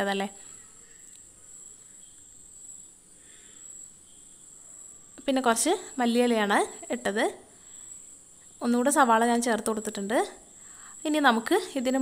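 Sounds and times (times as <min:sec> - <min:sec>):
thin high-pitched whine: 0:00.0 - 0:12.0.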